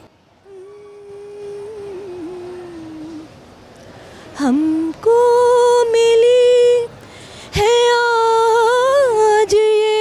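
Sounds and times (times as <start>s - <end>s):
woman singing long note: 0.4s - 3.3s.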